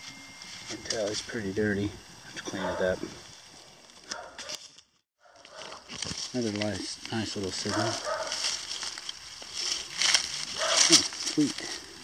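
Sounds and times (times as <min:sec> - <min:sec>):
rustling of dry leaves: 0:00.0 - 0:12.0.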